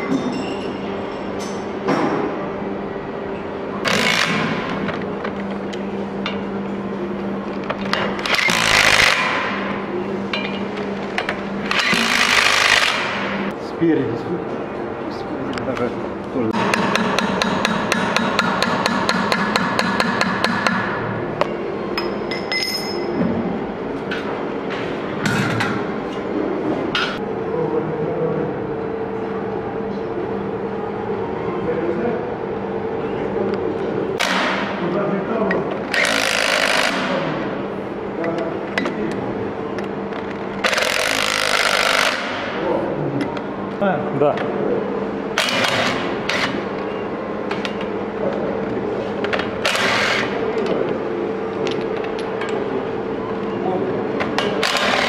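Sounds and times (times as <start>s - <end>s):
impact driver hammering: 16.6s - 21.0s, 34.2s - 34.7s.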